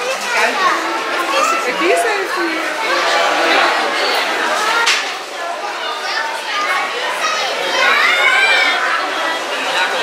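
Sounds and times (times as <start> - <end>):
children chattering: 0.0 - 10.0
people talking: 0.0 - 10.0.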